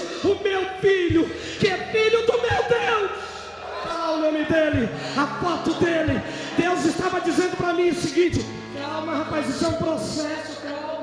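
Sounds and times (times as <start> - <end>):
man preaching over loudspeakers: 0.0 - 11.0.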